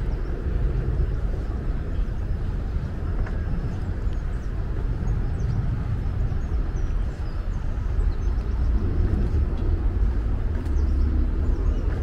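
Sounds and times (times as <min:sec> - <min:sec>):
birds chirping: 0:00.0 - 0:12.0
distant traffic rumble: 0:00.0 - 0:12.0.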